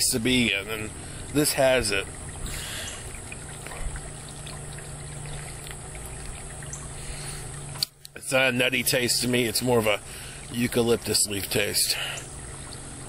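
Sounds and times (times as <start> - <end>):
low steady hum: 0.0 - 13.0
trickling water: 0.0 - 13.0.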